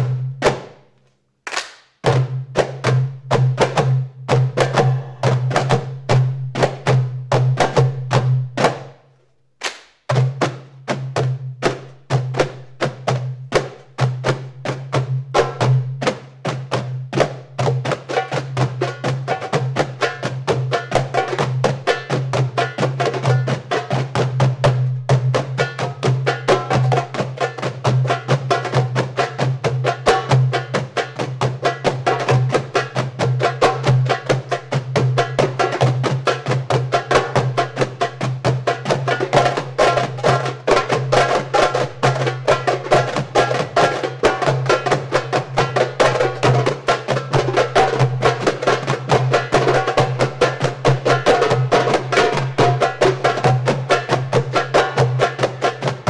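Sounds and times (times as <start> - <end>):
hand drums playing fast rhythm: 0.0 - 0.8, 2.0 - 9.0, 10.0 - 56.0.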